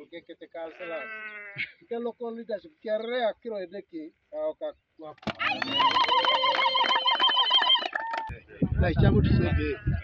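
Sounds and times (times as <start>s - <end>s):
crowd clapping: 5.4s - 8.3s.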